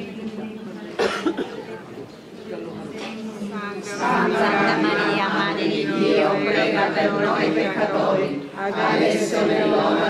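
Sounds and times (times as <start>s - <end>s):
murmur of voices: 0.0s - 10.0s
person coughing: 1.0s - 1.7s.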